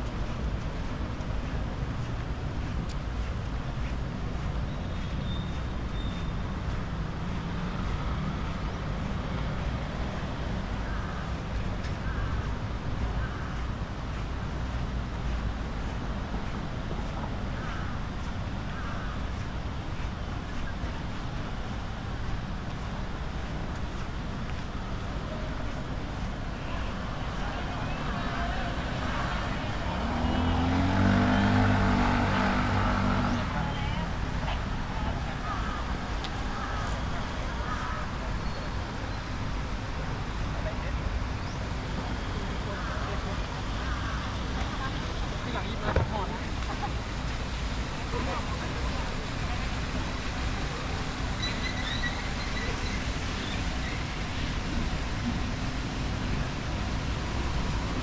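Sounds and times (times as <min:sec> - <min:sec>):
street traffic noise: 0:00.0 - 0:58.0.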